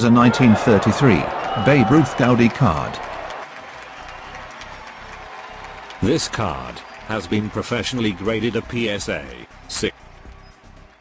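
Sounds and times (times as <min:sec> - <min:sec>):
crowd applause and cheering: 0:00.0 - 0:11.0
music: 0:00.0 - 0:11.0.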